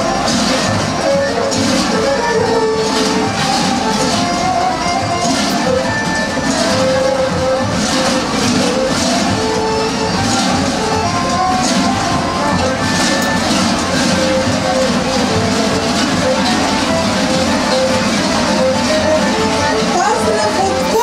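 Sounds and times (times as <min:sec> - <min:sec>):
large bells clanging rhythmically: 0:00.0 - 0:21.0.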